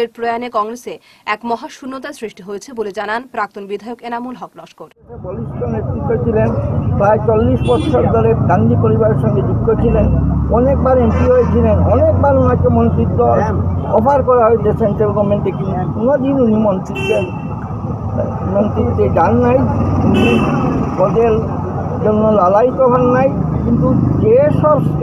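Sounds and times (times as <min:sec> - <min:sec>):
man speaking: 0:05.0 - 0:17.4, 0:18.1 - 0:25.0
low rumble of passing vehicles: 0:05.0 - 0:25.0.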